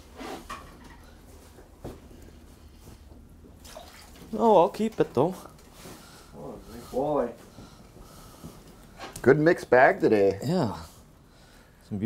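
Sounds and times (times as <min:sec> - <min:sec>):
water sloshing splash: 0:03.6 - 0:05.0
faint water drips: 0:03.6 - 0:05.2.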